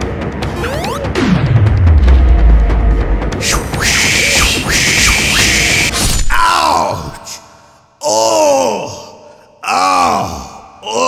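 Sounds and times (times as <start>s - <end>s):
man groaning in pain: 8.0s - 11.0s.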